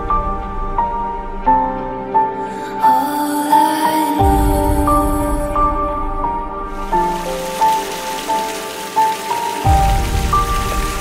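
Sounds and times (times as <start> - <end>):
water splashing over rocks: 6.8 - 11.0.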